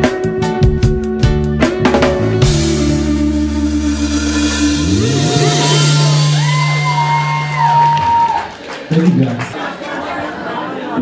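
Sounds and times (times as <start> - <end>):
held low bass note: 2.2 - 7.6
high gliding whoops: 3.6 - 8.6.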